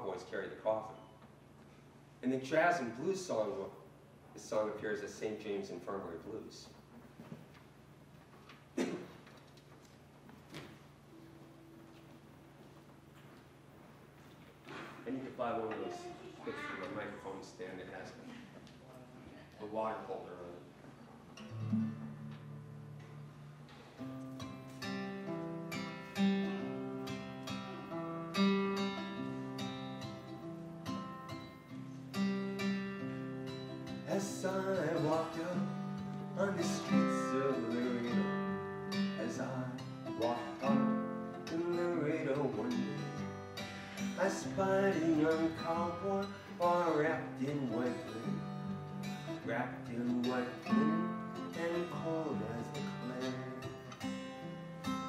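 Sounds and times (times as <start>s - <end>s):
acoustic guitar chords: 21.4s - 55.0s
man singing or humming: 34.1s - 43.3s, 44.2s - 48.6s, 49.4s - 53.9s.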